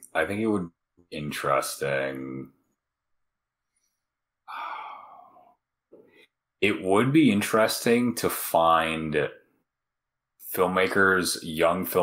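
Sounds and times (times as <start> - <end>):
person sighing: 4.5 - 5.6.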